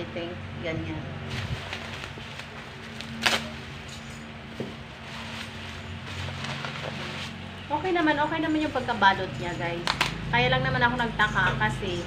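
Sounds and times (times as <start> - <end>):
plastic packaging rustling: 1.3 - 7.6.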